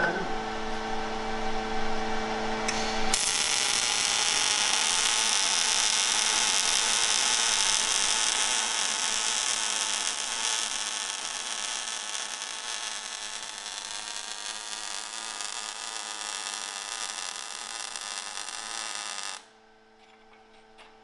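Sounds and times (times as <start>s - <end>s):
welding arc crackling hiss: 2.7s - 19.5s.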